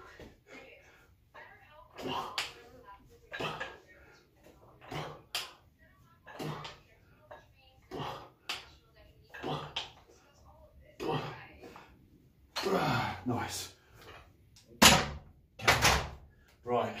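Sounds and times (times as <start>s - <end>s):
man exhaling and grunting: 12.6s - 13.3s.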